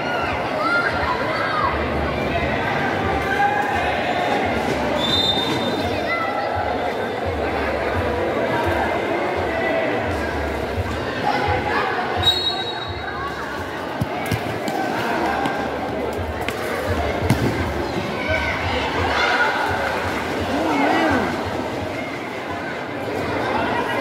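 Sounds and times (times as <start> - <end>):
spectators talking and shouting: 0.0 - 24.0.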